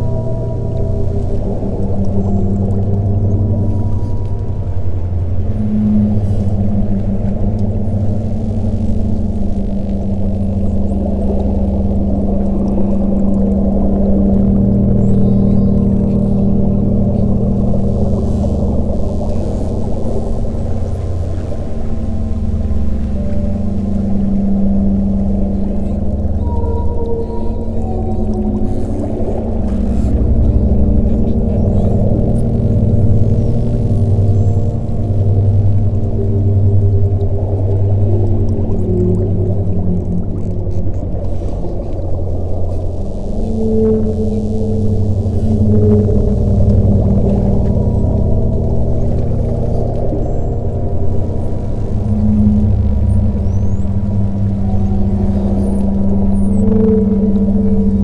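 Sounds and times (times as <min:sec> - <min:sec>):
low sustained drone tones: 0:00.0 - 0:58.0
whale calls: 0:00.0 - 0:58.0.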